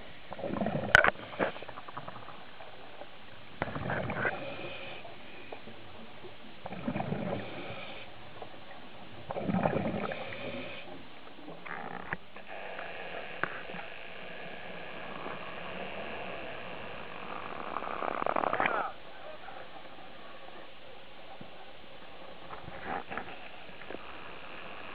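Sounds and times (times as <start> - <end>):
wind and water hiss: 0.0 - 24.9
diver exhaling bubbles underwater: 0.3 - 1.1, 9.3 - 10.7.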